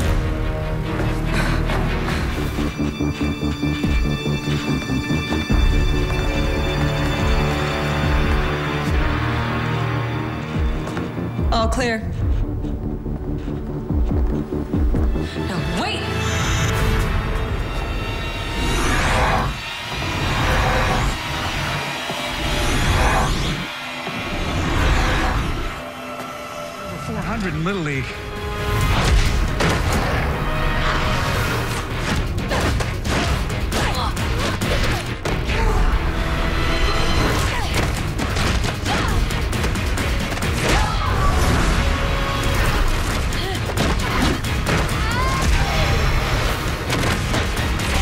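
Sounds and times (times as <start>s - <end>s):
tense score: 0.0s - 48.0s.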